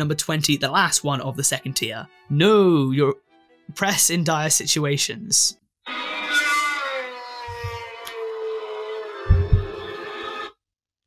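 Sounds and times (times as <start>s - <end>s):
long wailing cry: 5.9s - 10.5s
dull low thumps: 9.3s - 9.8s.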